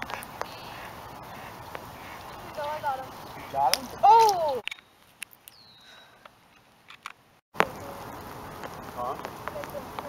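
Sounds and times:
rain hissing on a pond: 0:00.0 - 0:04.6, 0:07.6 - 0:10.0.

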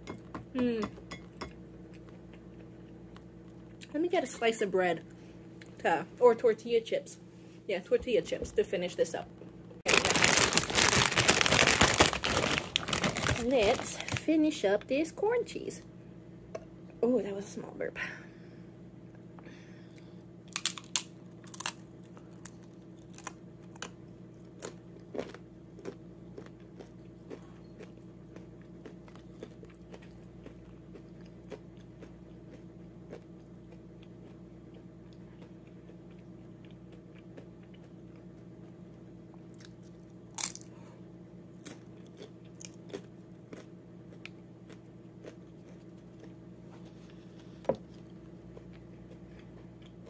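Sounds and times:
chips crunching: 0:09.8 - 0:14.3, 0:20.5 - 0:33.3, 0:39.5 - 0:40.7
chewing: 0:24.6 - 0:40.7, 0:41.6 - 0:50.0.

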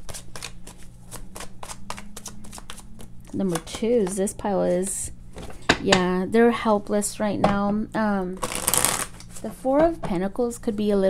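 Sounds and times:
cards being shuffled: 0:00.0 - 0:04.2, 0:08.4 - 0:09.5
faint low hum: 0:00.0 - 0:11.0.

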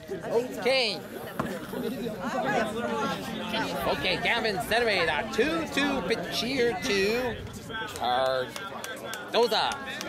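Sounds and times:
spectators chatting: 0:00.0 - 0:10.0.

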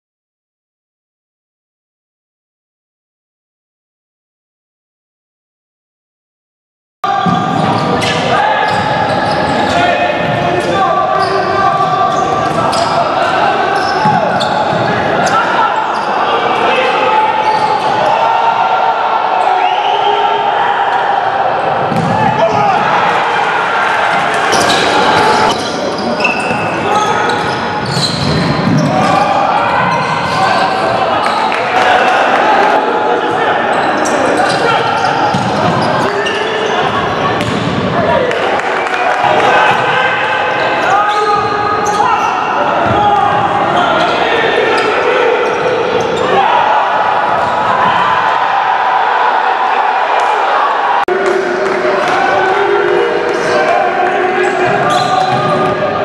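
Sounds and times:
people shouting in a hall: 0:07.1 - 0:56.0.

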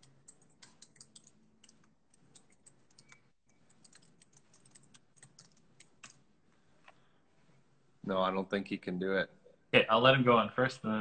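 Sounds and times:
keyboard typing clicks: 0:00.0 - 0:06.2.

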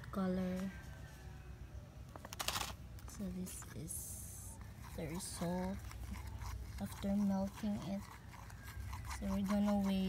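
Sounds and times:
plastic pouch crinkling: 0:02.2 - 0:02.8.

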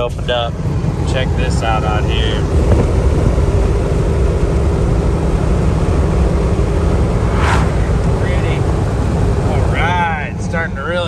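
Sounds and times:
truck road and wind noise: 0:00.0 - 0:11.0
brief whoosh: 0:06.8 - 0:08.6.

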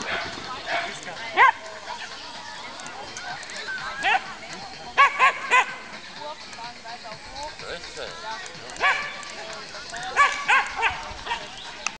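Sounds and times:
dog barking: 0:00.0 - 0:01.6, 0:05.0 - 0:05.8, 0:08.8 - 0:09.2, 0:10.2 - 0:11.5.

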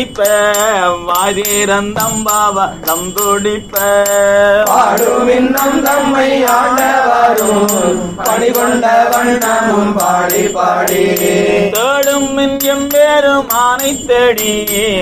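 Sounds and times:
metallic jingle keeping time: 0:00.0 - 0:15.0
steady drone: 0:03.9 - 0:12.3
group singing a devotional hymn: 0:04.4 - 0:11.9.

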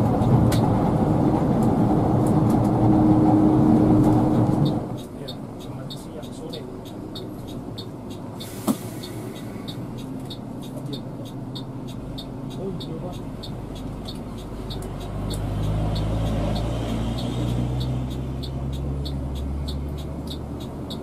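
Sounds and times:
coach engine rumble: 0:00.0 - 0:11.3
light even ticking: 0:04.4 - 0:21.0.

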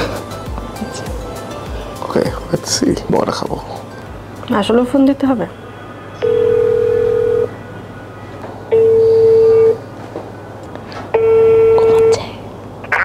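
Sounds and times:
telephone ringback tone: 0:06.2 - 0:07.6, 0:08.7 - 0:09.8, 0:11.2 - 0:12.2.

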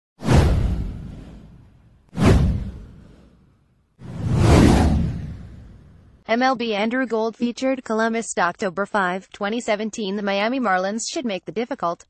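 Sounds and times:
whoosh sound effects: 0:00.2 - 0:06.1.

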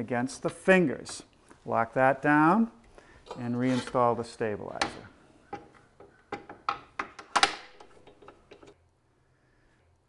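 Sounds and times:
clamps clicking and knocking on metal: 0:04.8 - 0:08.8.

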